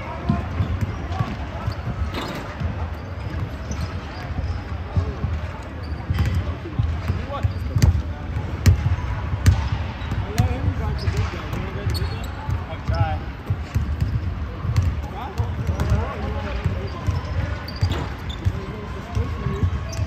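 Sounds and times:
players' voices: 0:00.0 - 0:20.0
basketballs bouncing on hardwood floor: 0:06.0 - 0:20.0.

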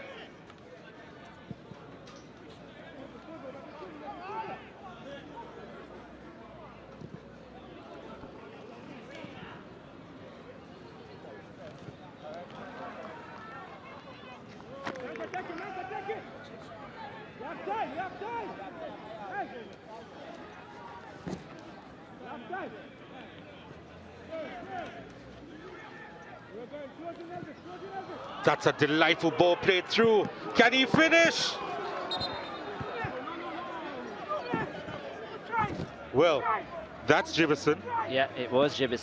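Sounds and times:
stadium crowd noise: 0:00.0 - 0:39.0
distant players shouting: 0:24.3 - 0:38.4.

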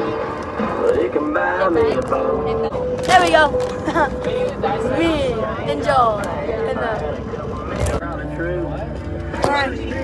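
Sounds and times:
low road rumble: 0:00.0 - 0:10.0
children chattering: 0:01.0 - 0:08.7.

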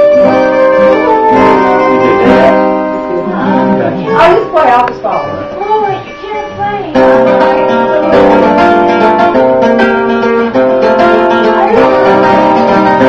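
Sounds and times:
two acoustic guitars playing: 0:00.0 - 0:13.0.

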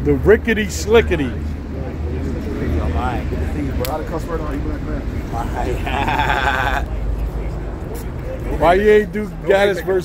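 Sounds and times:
man laughing: 0:05.4 - 0:06.9.

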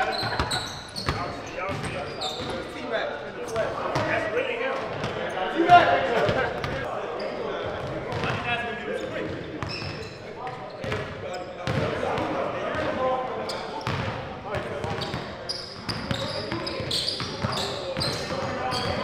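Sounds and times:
players talking: 0:00.0 - 0:19.0.

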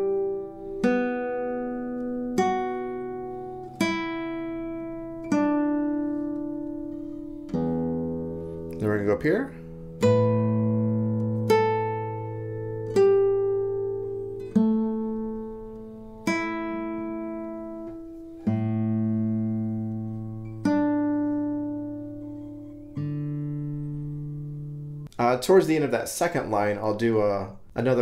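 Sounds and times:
classical guitar plucked notes: 0:00.0 - 0:25.1.

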